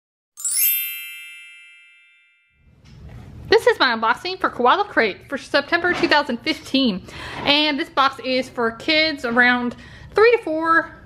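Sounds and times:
bright chime with shimmer: 0.4 - 2.7.

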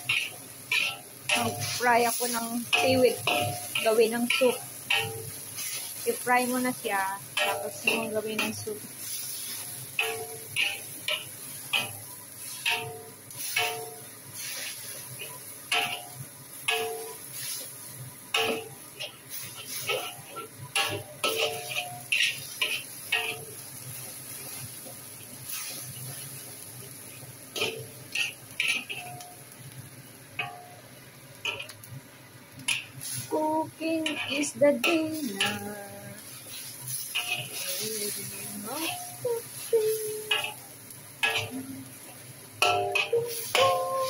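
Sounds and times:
metal spatula scraping wok: 0.0 - 6.8, 7.4 - 17.8, 18.4 - 29.2, 34.0 - 41.6
frying sizzle: 0.0 - 44.0.

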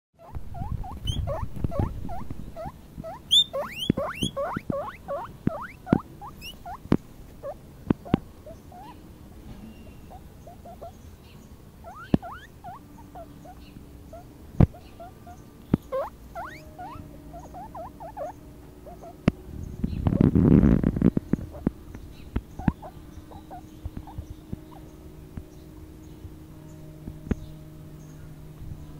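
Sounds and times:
guinea pig squeaking: 0.2 - 9.0, 9.8 - 11.0, 11.8 - 19.2, 22.6 - 25.0.

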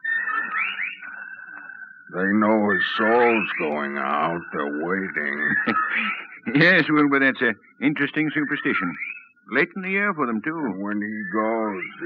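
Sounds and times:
steady high eerie whistling: 0.0 - 12.0.

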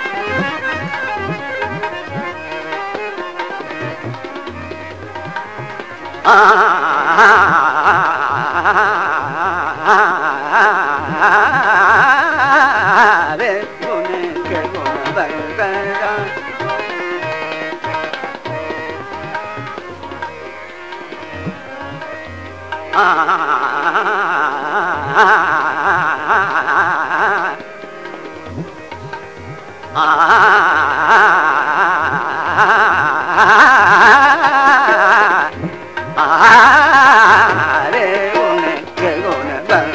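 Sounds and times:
man singing ornamented melody: 0.0 - 39.9
tabla drumming: 0.0 - 39.9.

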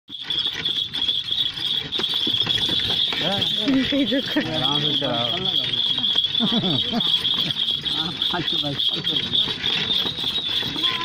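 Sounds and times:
hooves and cart rattling: 0.1 - 11.0.

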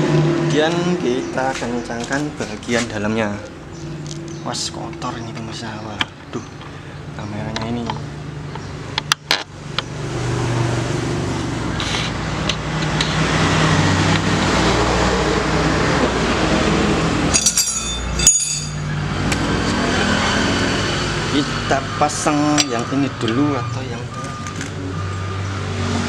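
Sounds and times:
vehicle engine running: 0.0 - 26.0
ringing metallic clinks: 17.3 - 19.0.

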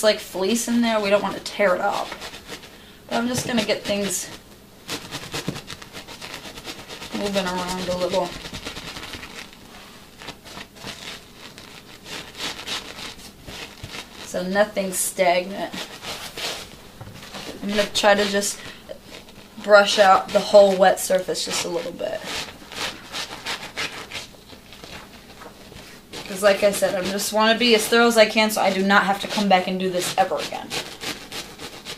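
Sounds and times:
scrub brush scrubbing fabric: 0.4 - 31.9.

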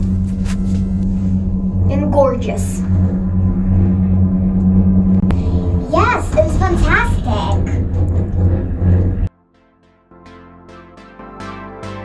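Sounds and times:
gondola cabin humming: 0.0 - 9.3.

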